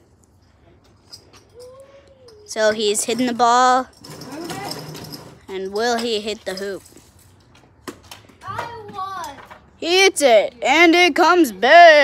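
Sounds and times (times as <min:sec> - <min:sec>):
children's gliding vocal sounds: 0:01.5 - 0:03.4
child speaking loudly: 0:08.4 - 0:09.5.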